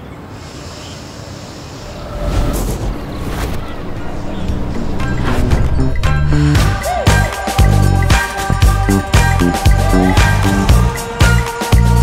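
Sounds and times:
airy whoosh: 1.5 - 11.2.

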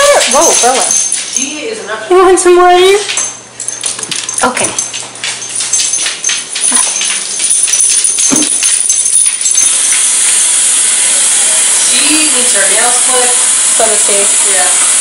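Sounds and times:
kitchen tap running: 0.0 - 1.2, 4.5 - 15.0
metallic clinking and jingling: 0.0 - 2.4, 3.0 - 15.0.

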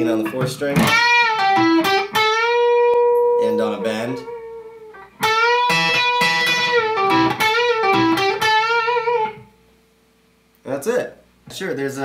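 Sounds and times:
electric guitar lead lick: 0.2 - 9.5.

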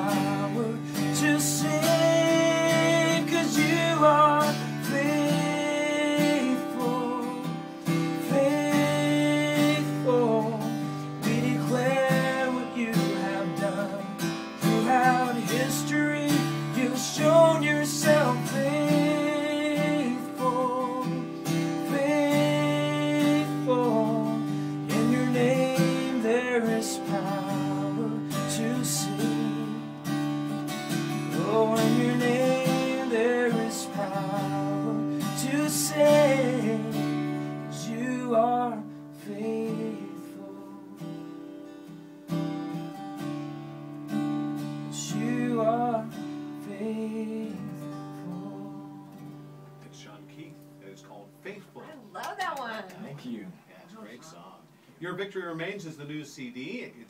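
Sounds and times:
man singing a slow worship song: 0.0 - 30.2, 31.2 - 41.2, 44.9 - 49.3
strummed acoustic guitar: 0.0 - 53.0.

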